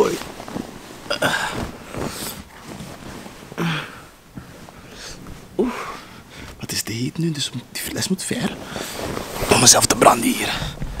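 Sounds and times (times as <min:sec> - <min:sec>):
man breathing and grunting: 0:03.5 - 0:06.6, 0:10.4 - 0:11.0.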